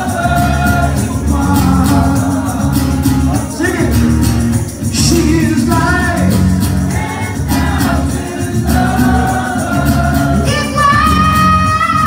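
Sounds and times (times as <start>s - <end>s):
man singing: 0.0s - 4.2s, 4.8s - 6.8s
strummed acoustic guitar: 0.0s - 12.0s.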